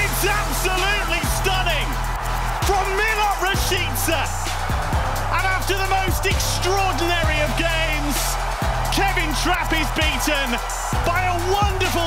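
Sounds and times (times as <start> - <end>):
background music with gliding melody: 0.0 - 12.0.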